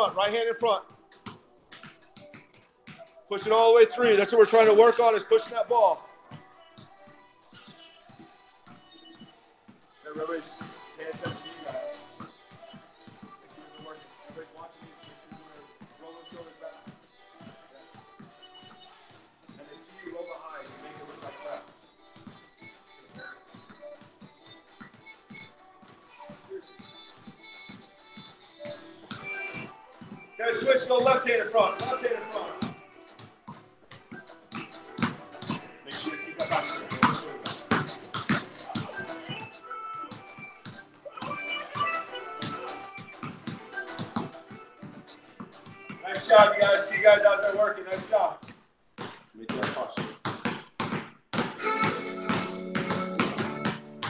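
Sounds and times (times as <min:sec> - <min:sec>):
background music with voice: 0:00.0 - 0:48.6, 0:51.6 - 0:54.0
basketballs bouncing on concrete: 0:00.0 - 0:54.0.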